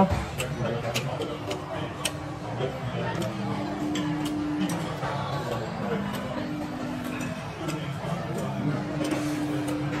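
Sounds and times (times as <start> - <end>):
dining room chatter: 0.0 - 10.0.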